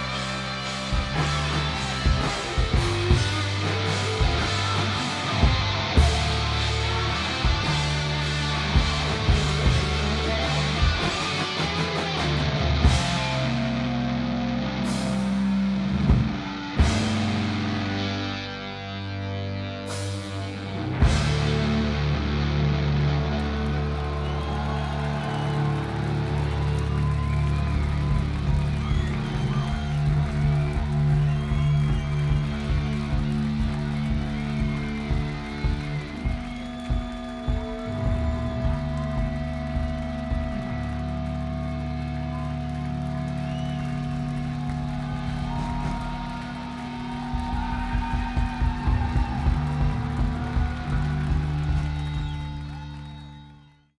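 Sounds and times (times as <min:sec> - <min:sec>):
live rock band playing: 0:00.0 - 0:53.5
drum hits: 0:44.7 - 0:52.2.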